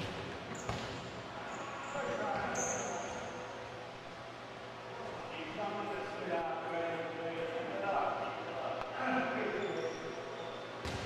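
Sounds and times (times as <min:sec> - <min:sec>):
short high squeaks: 0:01.5 - 0:03.2.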